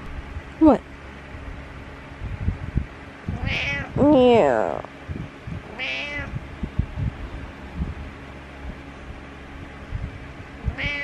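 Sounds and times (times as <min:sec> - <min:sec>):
cat meowing: 0:03.4 - 0:04.9, 0:05.7 - 0:06.3, 0:10.7 - 0:11.0.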